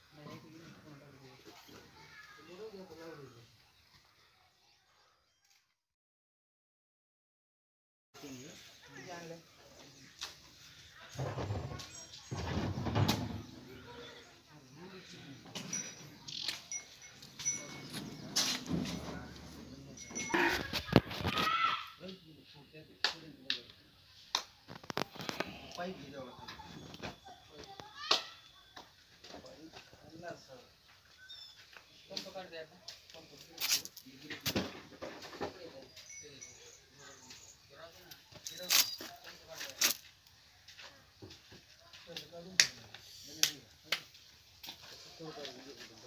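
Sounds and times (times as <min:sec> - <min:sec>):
indistinct voices talking: 0:09.3 - 0:22.5.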